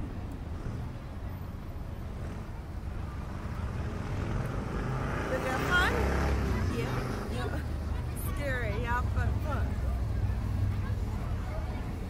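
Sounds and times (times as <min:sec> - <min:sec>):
voices: 0:02.2 - 0:12.0.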